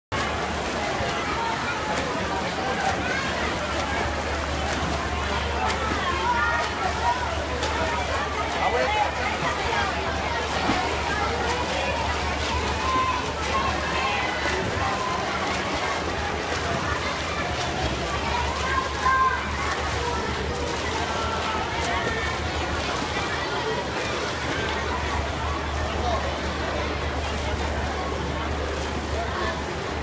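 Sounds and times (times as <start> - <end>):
swimmers splashing: 0.1 - 30.0.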